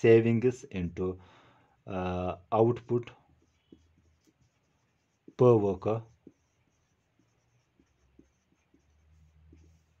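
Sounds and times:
marker pen ticking on whiteboard: 3.4 - 9.9.

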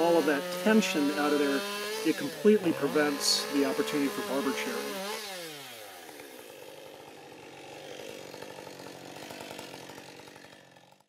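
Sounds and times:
chainsaw idling: 0.0 - 11.0.

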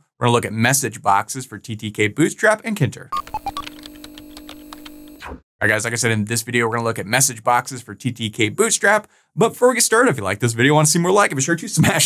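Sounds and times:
electronic beeps falling in pitch: 3.2 - 4.0
keyboard-like clicks: 3.2 - 5.0.

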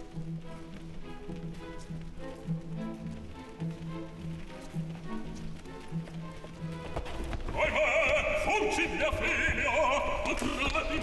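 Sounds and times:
orchestra playing tense music: 0.0 - 11.0
man singing operatically: 7.5 - 11.0.

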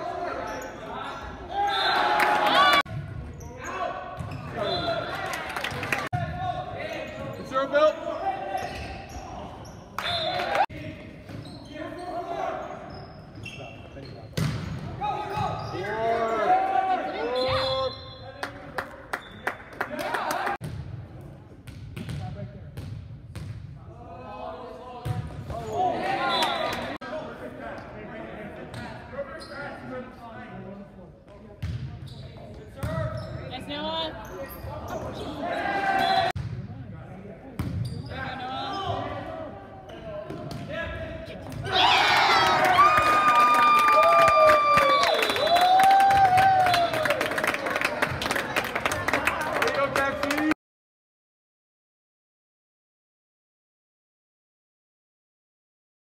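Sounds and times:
players shouting: 41.6 - 47.2.

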